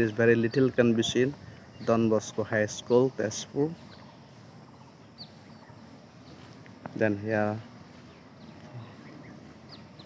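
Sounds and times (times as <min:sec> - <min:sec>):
faint distant bird calls: 0:00.0 - 0:10.0.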